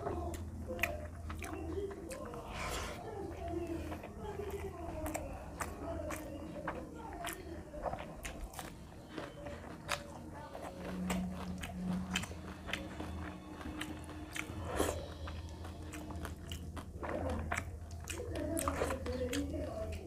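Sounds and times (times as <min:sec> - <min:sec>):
low steady hum: 0:00.0 - 0:20.0
mouth chewing food: 0:00.0 - 0:20.0.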